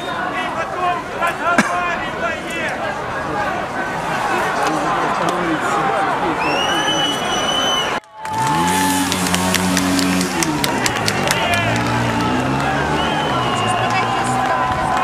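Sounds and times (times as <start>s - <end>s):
crowd cheering: 0.0s - 15.0s
high whistles: 6.4s - 8.0s, 12.9s - 14.1s
people clapping: 8.0s - 15.0s.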